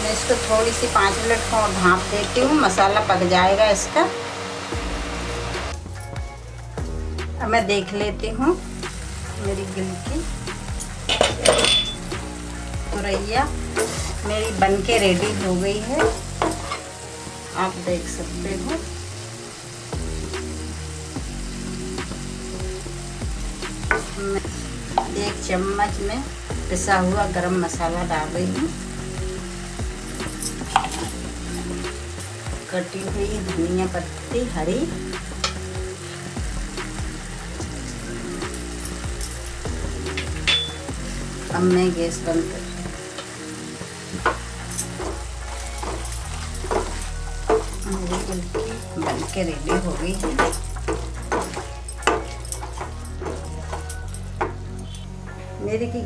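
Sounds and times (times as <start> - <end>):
vegetable pieces frying in a pan: 0.0 - 55.2
food sizzling under a lid: 0.0 - 55.3
background music: 0.0 - 56.0
utensils clicking against pan: 10.8 - 12.1, 12.9 - 16.9, 30.1 - 33.9, 35.4 - 35.7, 38.4 - 40.9, 44.1 - 55.1.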